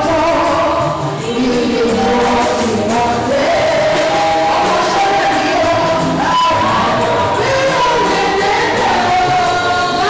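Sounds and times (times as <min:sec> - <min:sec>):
choir singing with music: 0:00.0 - 0:10.0.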